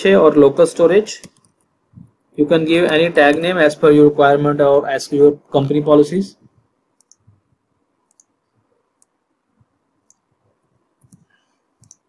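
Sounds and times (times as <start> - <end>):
faint computer mouse clicks: 7.0 - 7.2, 8.1 - 8.3, 11.0 - 12.0.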